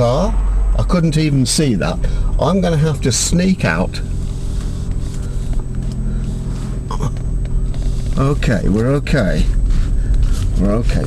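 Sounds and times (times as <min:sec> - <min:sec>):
car engine low rumble: 0:00.0 - 0:11.0.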